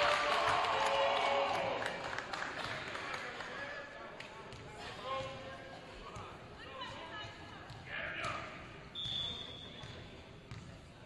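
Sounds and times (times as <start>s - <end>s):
referee's whistle blast: 8.9s - 9.8s.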